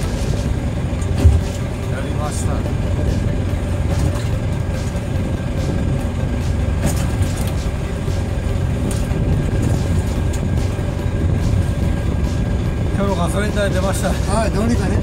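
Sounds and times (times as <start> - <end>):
boat engine idling: 0.0 - 15.0.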